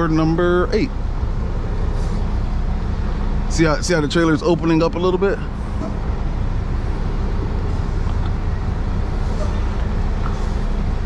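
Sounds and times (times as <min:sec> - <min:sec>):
diesel truck engine rumbling: 0:00.0 - 0:11.0.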